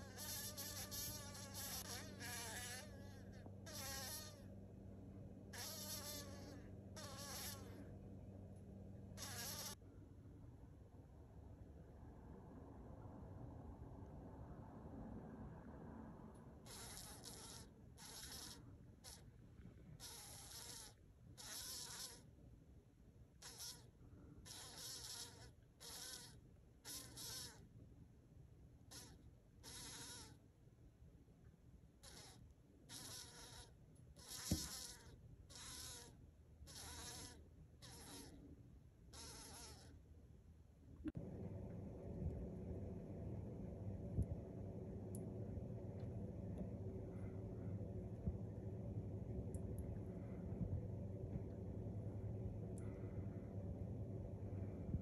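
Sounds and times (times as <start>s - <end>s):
fly buzzing wings: 0.0s - 4.4s, 5.6s - 7.8s, 9.2s - 9.8s, 16.6s - 19.2s, 32.0s - 36.1s.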